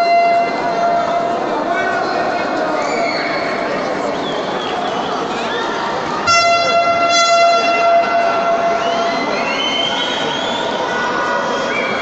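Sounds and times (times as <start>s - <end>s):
arena crowd noise and chatter: 0.0s - 12.0s
horn blast: 6.2s - 9.5s.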